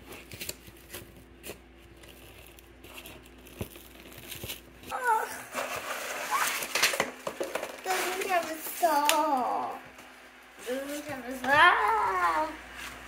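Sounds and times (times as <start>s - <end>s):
cardboard rustling: 0.0s - 9.0s
plastic bag crinkling: 0.1s - 9.0s.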